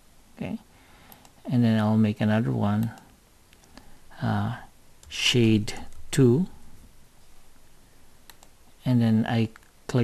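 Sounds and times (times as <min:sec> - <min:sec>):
mouse clicks: 0:08.3 - 0:08.6.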